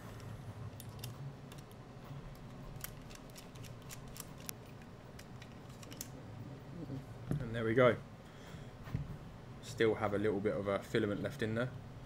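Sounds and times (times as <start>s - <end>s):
handling metal and plastic parts: 0.0s - 6.2s
faint low hum: 0.0s - 12.0s.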